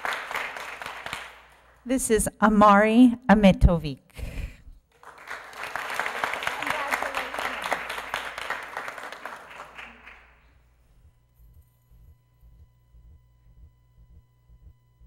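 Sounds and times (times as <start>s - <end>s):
audience applauding: 0.0s - 1.8s, 4.9s - 10.4s.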